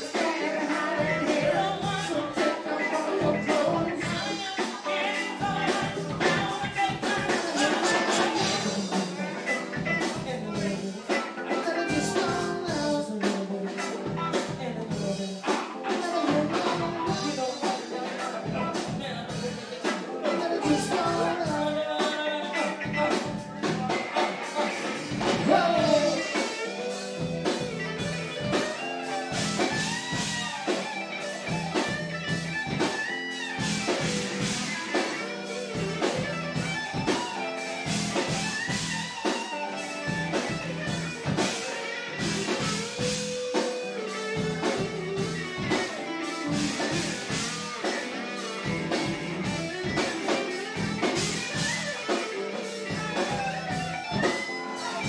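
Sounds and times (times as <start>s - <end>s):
electric guitar lines bending: 22.8s - 55.0s
steady drum beat: 23.0s - 55.0s.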